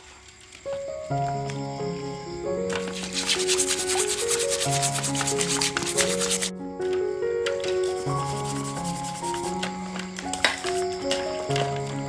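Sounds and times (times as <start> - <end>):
background music: 0.7 - 12.0.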